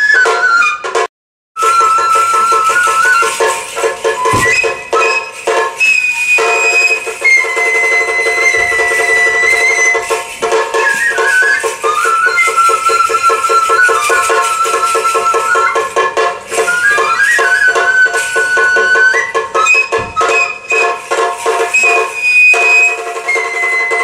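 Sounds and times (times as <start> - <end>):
bamboo flute long high notes: 0.0 - 24.0
quick drum strokes: 1.6 - 24.0.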